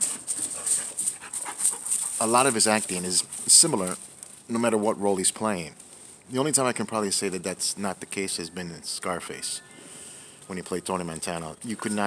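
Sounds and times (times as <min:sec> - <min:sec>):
dog panting: 0:00.0 - 0:03.1.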